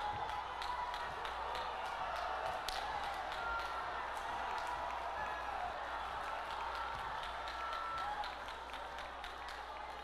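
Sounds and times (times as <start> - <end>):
murmur of crowd: 0.0 - 10.0.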